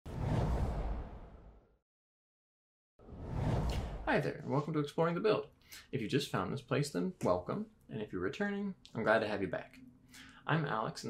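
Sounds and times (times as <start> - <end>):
deep whoosh: 3.0 - 4.2.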